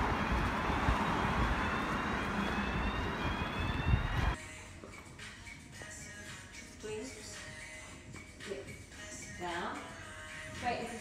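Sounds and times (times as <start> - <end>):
outdoor street noise: 0.0 - 4.4
wind rumbling on microphone: 0.0 - 4.4.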